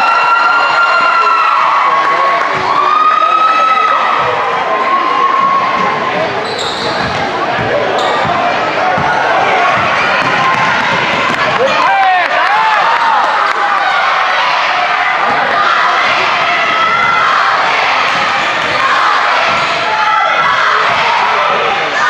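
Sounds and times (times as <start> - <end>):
people shouting: 7.7 - 22.0.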